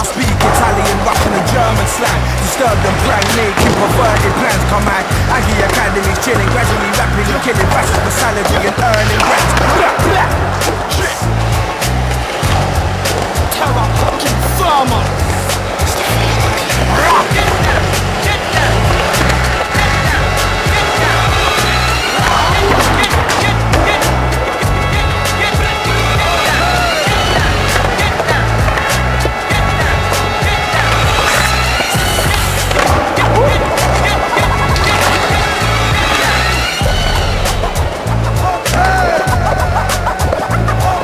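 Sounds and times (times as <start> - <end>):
hip-hop beat with heavy bass: 0.0 - 41.0
skateboard clacks: 0.0 - 41.0
skateboard wheels rolling on concrete: 0.0 - 41.0.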